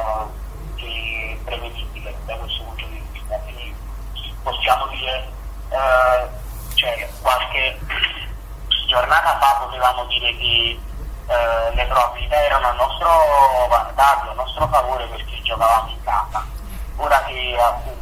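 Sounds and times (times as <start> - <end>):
person talking over telephone: 0.0 - 18.0.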